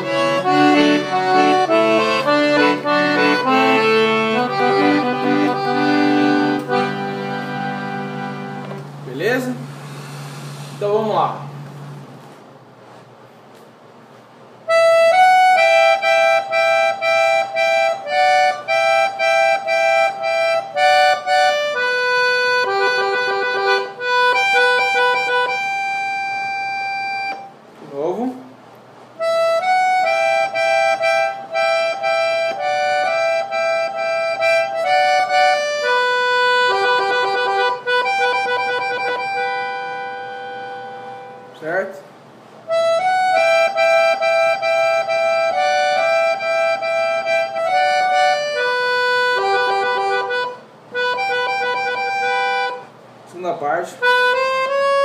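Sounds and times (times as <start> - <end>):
accordion melody: 0.0 - 13.0, 14.6 - 28.1, 29.1 - 55.0.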